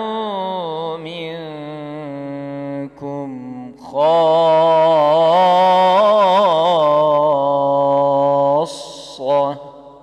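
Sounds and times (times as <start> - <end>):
man chanting melodically: 0.0 - 10.0.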